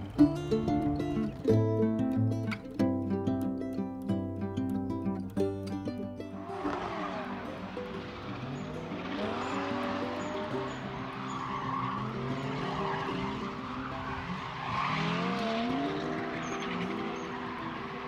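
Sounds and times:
race car engine revving: 0:06.4 - 0:18.0.

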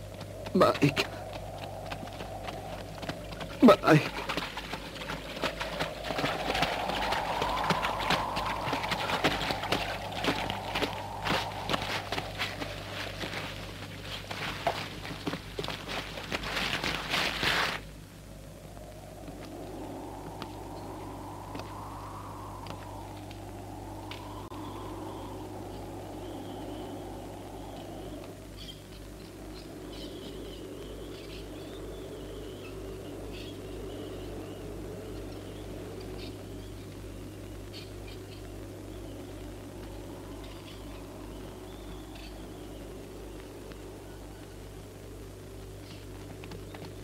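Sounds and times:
steady low hum: 0:00.0 - 0:47.0
rushing noise: 0:00.5 - 0:14.7, 0:18.6 - 0:28.2
small birds chirping: 0:19.5 - 0:47.0.

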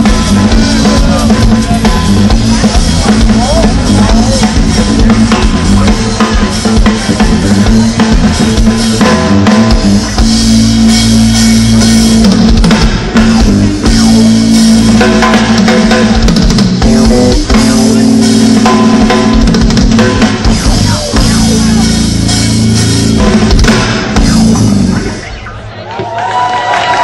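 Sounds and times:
drum kit: 0:00.0 - 0:25.8
electric guitars sustained notes: 0:00.0 - 0:25.8.

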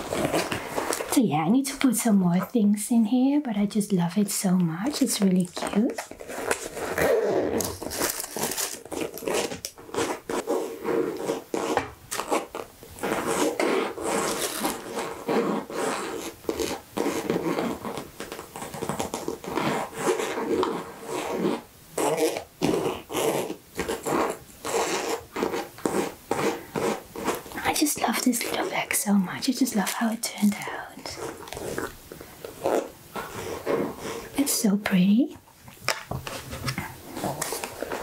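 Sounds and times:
fingernails scratching fabric bag: 0:00.0 - 0:01.2, 0:04.8 - 0:34.7, 0:36.2 - 0:38.0.

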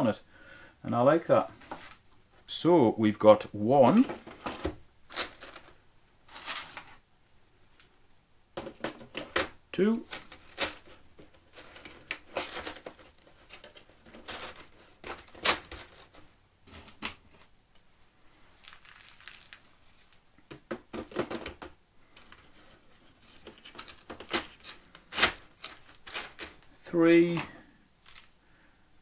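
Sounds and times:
ceramic balls and plastic trays rattling: 0:08.6 - 0:17.0, 0:18.6 - 0:26.7.

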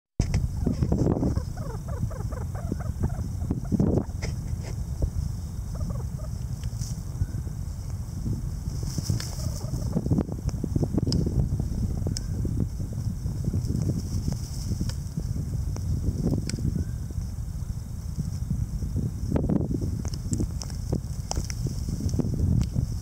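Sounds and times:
steady low rumble: 0:00.2 - 0:23.0
soft bird chattering: 0:00.6 - 0:04.2
bird scuffing and flicking soil: 0:08.6 - 0:11.4, 0:13.4 - 0:16.6, 0:20.0 - 0:23.0.

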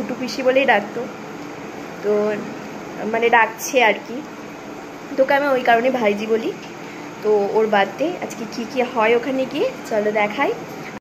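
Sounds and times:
woman speaking: 0:00.0 - 0:01.2, 0:02.0 - 0:04.4, 0:05.1 - 0:10.7
steady room noise hiss: 0:00.0 - 0:11.0.

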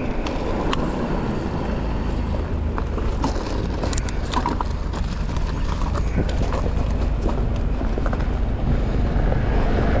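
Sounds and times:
bike tyres crunching on gravel: 0:00.0 - 0:08.6
wind rumble on microphone: 0:00.0 - 0:10.0.

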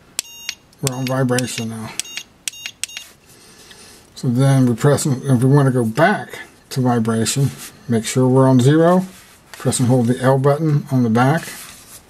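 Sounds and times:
e-collar short electronic beeps: 0:00.2 - 0:01.1, 0:02.0 - 0:03.2.

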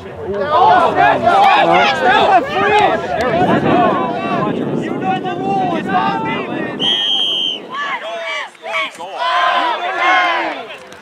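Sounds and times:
players shouting: 0:00.2 - 0:11.0
referee's whistle blast: 0:06.8 - 0:07.7.

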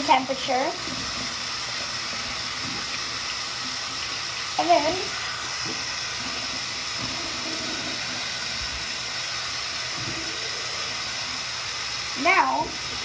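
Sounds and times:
water running from sink tap: 0:00.0 - 0:13.0.

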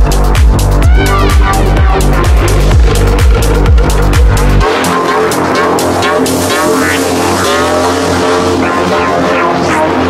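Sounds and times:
sustained synth chords: 0:00.0 - 0:10.0
sweeping synth lines: 0:00.0 - 0:10.0.

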